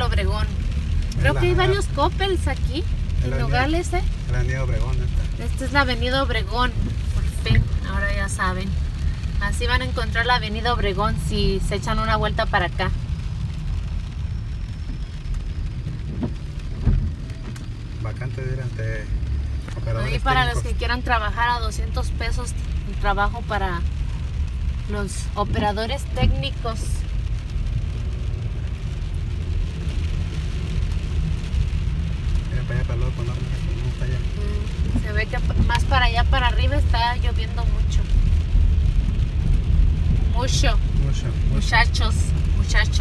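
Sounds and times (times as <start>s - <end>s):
light rain on car: 0.0s - 43.0s
low rumble inside car: 0.0s - 43.0s
tyres hissing on wet road: 0.0s - 43.0s
short thump: 16.1s - 17.6s.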